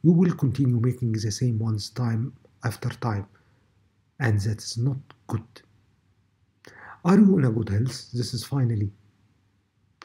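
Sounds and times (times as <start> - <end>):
man speaking: 0.0 - 3.4, 4.2 - 5.8, 6.7 - 9.0
breath intake: 6.7 - 7.0.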